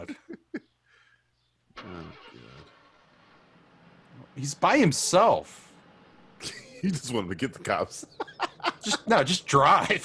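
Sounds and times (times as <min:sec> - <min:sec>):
faint car engine: 0:01.0 - 0:10.0
road noise: 0:01.7 - 0:10.0.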